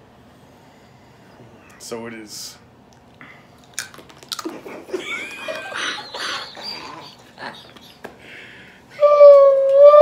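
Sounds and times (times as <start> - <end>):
brittle gum cracking: 3.6 - 4.6
person chewing: 3.6 - 4.7
muffled laughter: 4.5 - 8.2.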